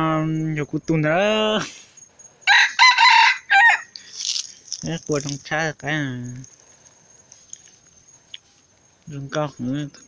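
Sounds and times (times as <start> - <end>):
rooster crowing: 2.4 - 4.0.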